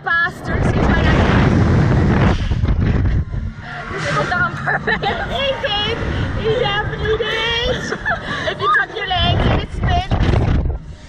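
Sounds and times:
wind rushing over microphone: 0.0 - 11.0
people laughing and squealing: 3.6 - 9.4.

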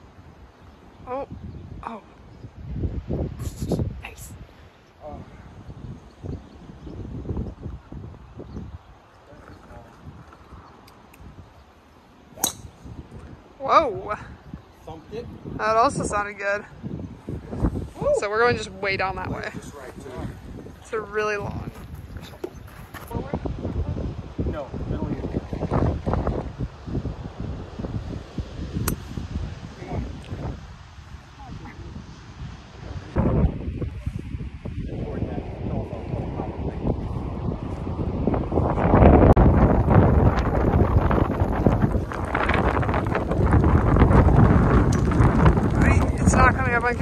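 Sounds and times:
wind buffeting microphone: 0.0 - 47.0
golf club striking ball: 12.4 - 12.9.

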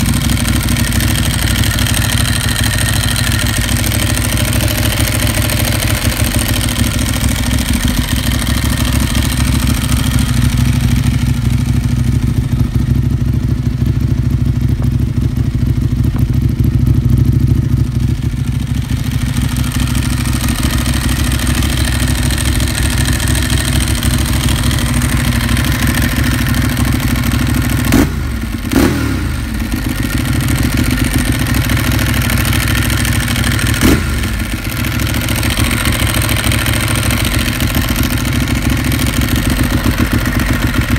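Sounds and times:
motorcycle engine idling: 0.0 - 40.9.

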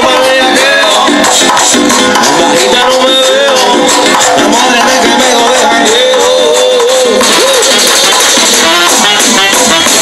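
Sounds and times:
live latin band over speakers: 0.0 - 10.0.

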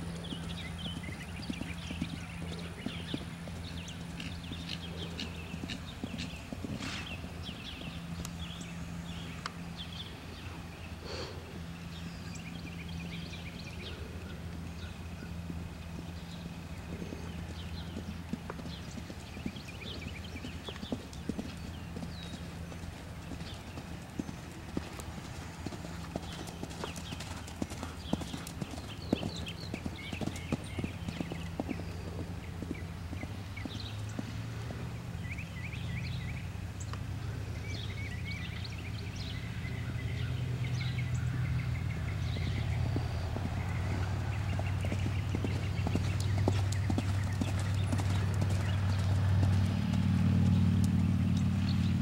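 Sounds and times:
steady low hum: 0.0 - 52.0
pony hoofbeats on sand: 16.9 - 34.8, 42.0 - 51.6.

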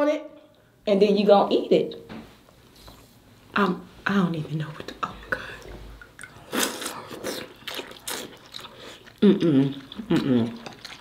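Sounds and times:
lip smacking: 5.5 - 11.0
wet slurping and sucking: 5.6 - 11.0.

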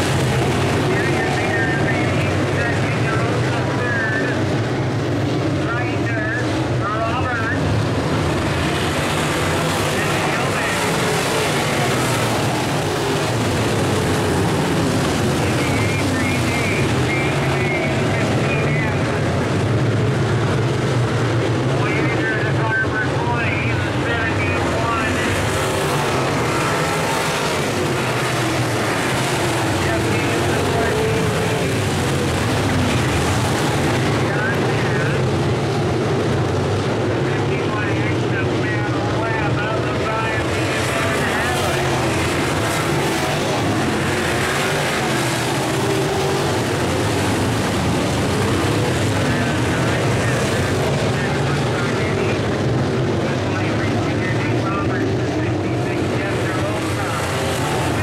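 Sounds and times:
race car engines racing: 0.0 - 58.0.

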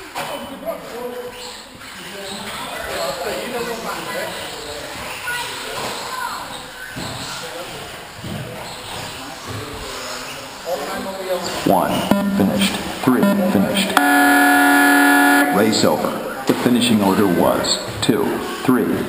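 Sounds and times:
people talking in echoing hall: 0.0 - 19.0.

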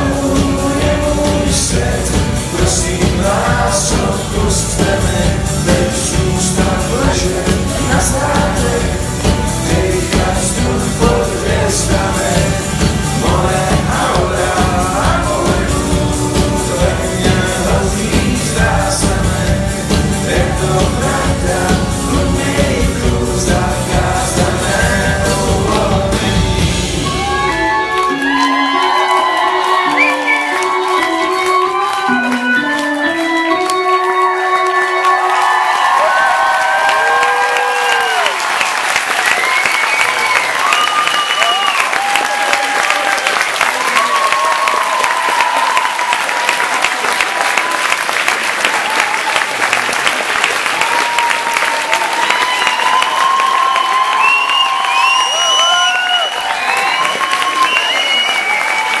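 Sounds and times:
audience clapping and cheering: 0.0 - 59.0
band playing live: 0.0 - 59.0.

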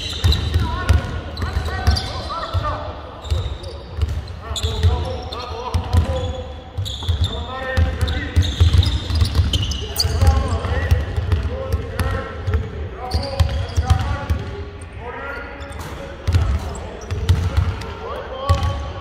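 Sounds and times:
basketballs bouncing on hardwood: 5.7 - 12.7, 15.8 - 17.8.

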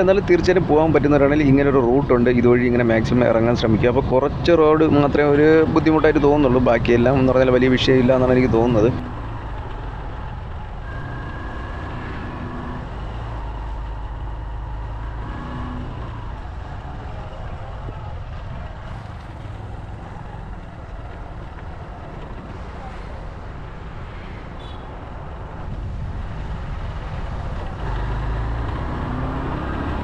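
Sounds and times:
vehicle engine and road noise: 0.0 - 30.0.

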